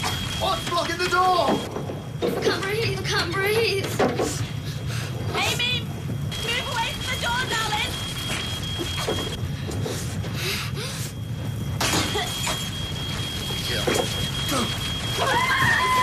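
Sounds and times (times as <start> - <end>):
high-pitched alarm tone: 0.0 - 1.8, 6.3 - 9.4, 11.8 - 16.0
fire crackling: 0.0 - 16.0.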